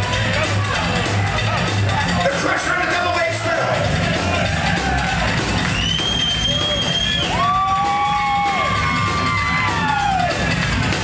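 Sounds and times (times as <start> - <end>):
drums keeping a steady beat: 0.0 - 11.0
upright bass: 0.0 - 11.0.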